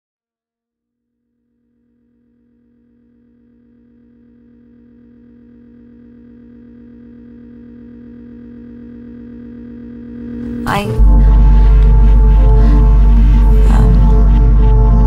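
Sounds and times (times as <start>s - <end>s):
electronic drone of held tones: 1.7s - 15.0s
fast low pulsing: 5.2s - 15.0s.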